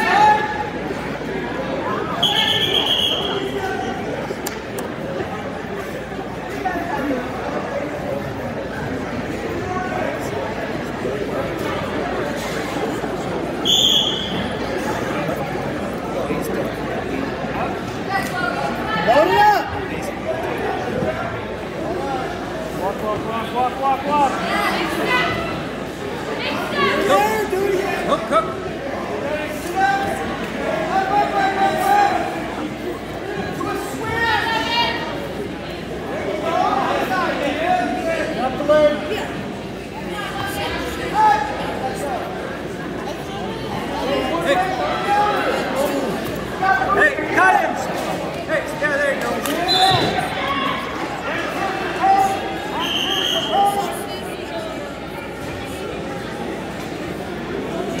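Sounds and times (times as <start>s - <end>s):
crowd chatter: 0.0s - 58.0s
referee's whistle: 2.2s - 3.5s, 13.6s - 14.5s, 49.7s - 50.2s, 52.7s - 53.8s
crowd and coaches shouting: 48.6s - 54.3s.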